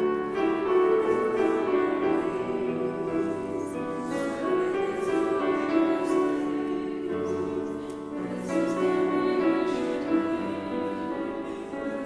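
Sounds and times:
grand piano accompaniment: 0.0 - 12.0
group singing a hymn: 0.0 - 12.0.

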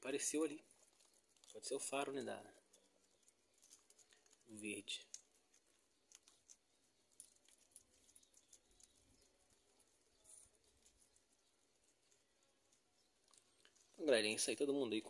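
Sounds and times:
guinea pigs chewing leaves: 0.0 - 15.0.

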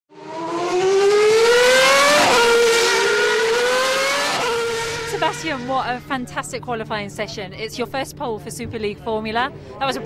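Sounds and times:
racing car engine accelerating: 0.1 - 6.2.

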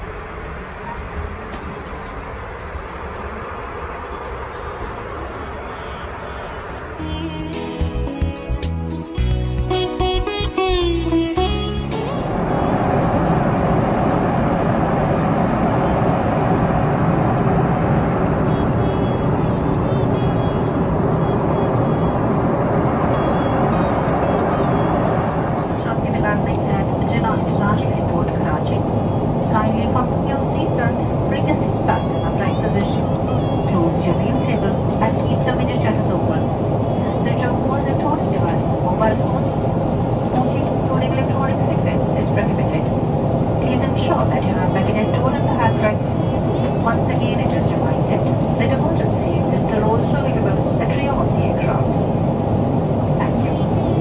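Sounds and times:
jet engine and airflow rush: 0.0 - 54.0
indistinct voices: 18.4 - 43.0, 43.6 - 52.1, 53.1 - 54.0.

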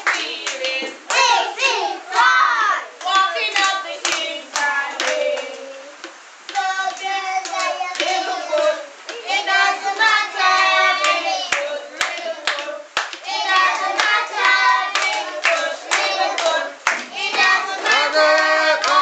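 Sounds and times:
hand claps: 0.0 - 1.3, 3.0 - 19.0
children singing together: 0.0 - 19.0.

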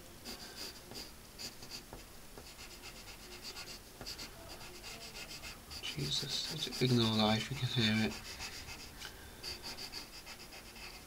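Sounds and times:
pencil scratching on paper: 0.2 - 11.0.

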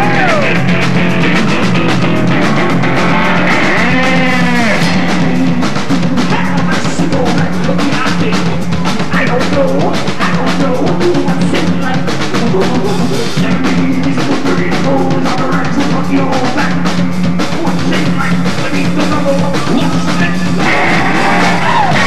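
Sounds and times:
electric guitar riff: 0.0 - 6.7, 20.4 - 22.0
rapid rock drumming: 0.0 - 22.0.

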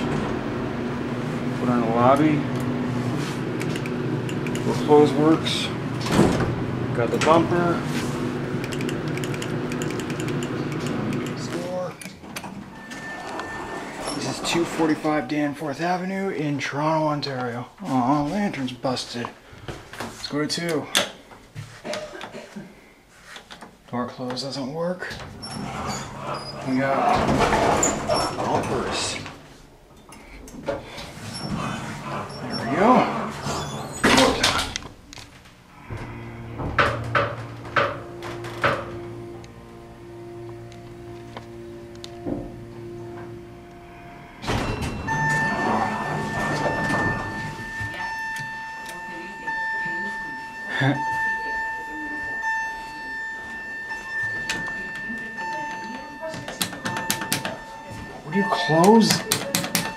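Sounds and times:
elevator low hum: 0.0 - 16.2, 25.1 - 59.9
elevator door clunks: 3.5 - 7.7, 25.1 - 29.4, 35.8 - 59.9
high electronic buzzer tone: 35.8 - 59.9.

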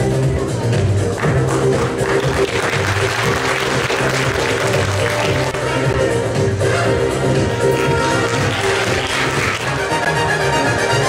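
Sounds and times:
background music: 0.0 - 11.0
audience applauding: 1.2 - 5.8, 7.8 - 9.9.

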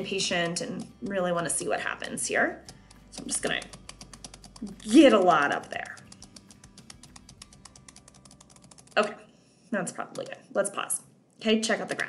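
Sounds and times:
computer mouse clicking: 0.0 - 9.1, 10.0 - 10.5.

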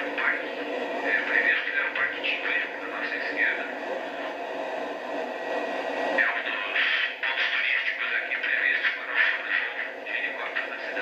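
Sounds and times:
faint high whine: 0.0 - 11.0
helicopter cabin hiss: 0.0 - 11.0.

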